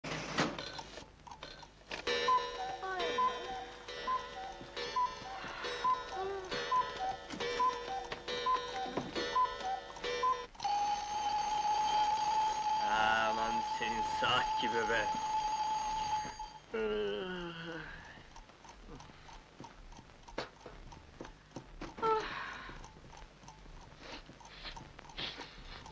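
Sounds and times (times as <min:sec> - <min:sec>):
alarm clock ringing: 0:02.0 - 0:16.6
held tone: 0:02.1 - 0:17.2.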